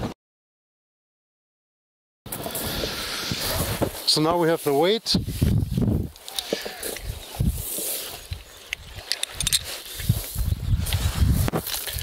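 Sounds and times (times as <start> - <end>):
footsteps crunching on gravel: 2.3 - 12.0
metal snap and swivel clicks: 8.7 - 10.1.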